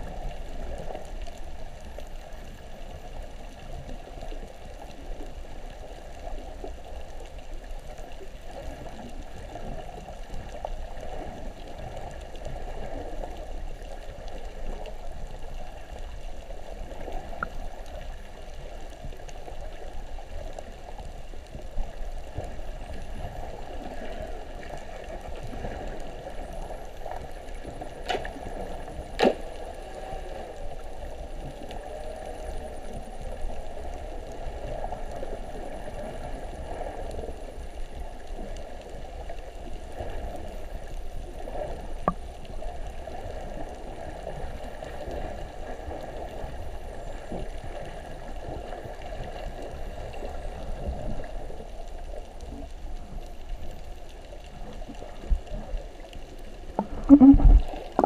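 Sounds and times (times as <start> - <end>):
muffled underwater water noise: 0.0 - 58.0.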